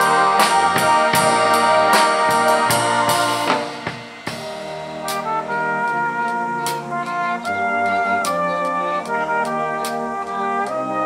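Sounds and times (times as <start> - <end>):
drum kit beat: 0.0 - 10.8
brass band playing: 0.0 - 11.0.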